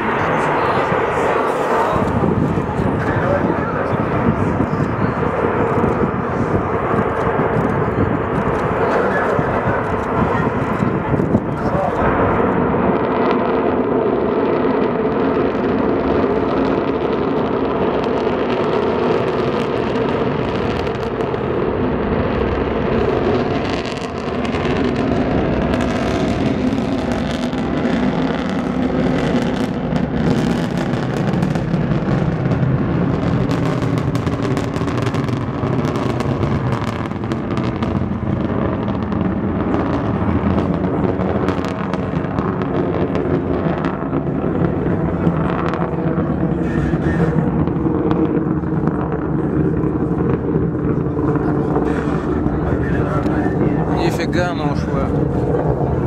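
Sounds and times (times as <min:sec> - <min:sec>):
rocket engine roar: 0:00.0 - 0:56.0
sharp crackling: 0:00.0 - 0:56.0.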